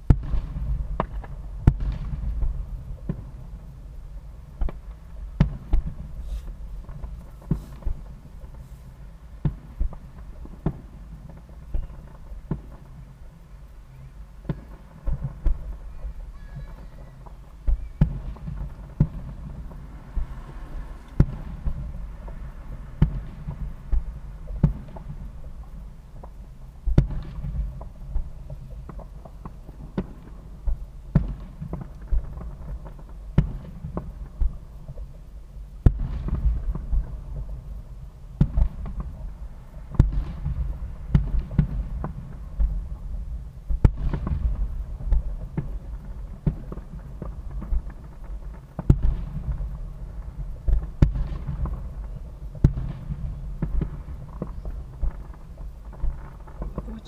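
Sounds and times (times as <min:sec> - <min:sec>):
distant firework booms: 0:00.0 - 0:57.0
low rumble: 0:00.0 - 0:57.0.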